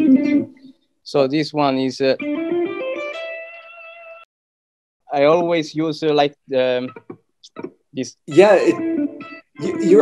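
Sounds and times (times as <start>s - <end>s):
electric guitar played fingerstyle: 0.0s - 0.8s, 2.2s - 4.2s, 6.8s - 10.0s.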